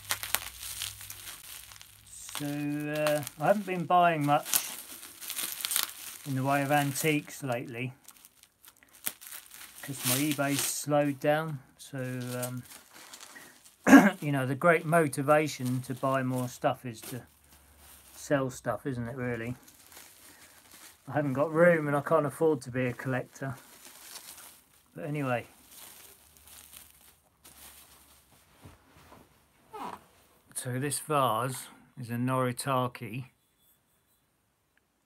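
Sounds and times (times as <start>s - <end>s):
bubble wrap crinkling: 0.0s - 30.0s
man speaking: 2.1s - 4.8s, 6.2s - 8.0s, 9.8s - 12.7s, 13.9s - 17.3s, 18.2s - 19.6s, 21.1s - 23.6s, 25.0s - 25.5s, 30.5s - 33.3s
man clearing throat: 13.8s - 14.3s.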